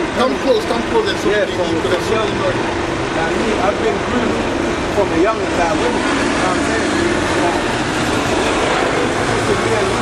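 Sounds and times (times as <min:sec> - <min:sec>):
road traffic passing close: 0:00.0 - 0:10.0
faint voices: 0:00.1 - 0:10.0.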